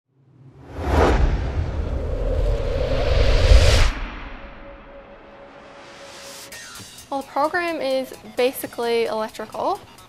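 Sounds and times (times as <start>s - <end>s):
whoosh with deep low rumble: 0.2s - 6.3s.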